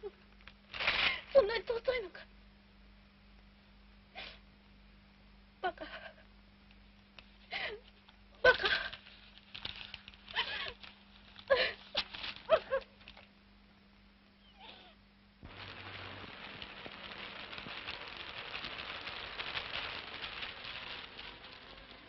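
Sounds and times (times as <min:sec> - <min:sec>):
rain hissing and crackling: 0:08.4 - 0:13.2, 0:14.6 - 0:22.0.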